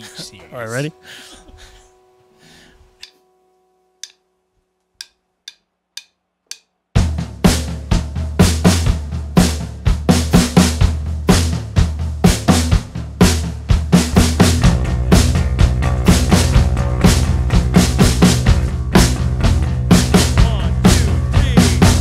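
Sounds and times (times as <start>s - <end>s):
drumsticks clicking together: 3.0s - 3.2s, 4.0s - 4.2s, 5.0s - 6.7s
rock drum kit beat: 6.5s - 22.0s.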